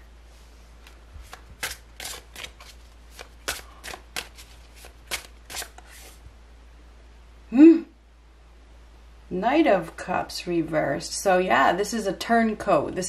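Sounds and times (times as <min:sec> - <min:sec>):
cards shuffled by hand: 0:00.8 - 0:06.2.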